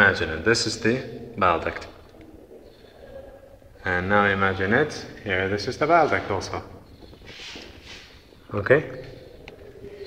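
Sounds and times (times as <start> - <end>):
man speaking: 0.0 - 2.0, 3.8 - 6.8, 8.4 - 9.3
faint room noise: 0.0 - 10.0.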